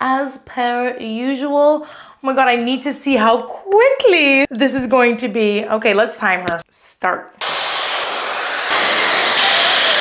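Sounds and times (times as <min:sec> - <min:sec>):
hair dryer blowing: 0:07.4 - 0:10.0.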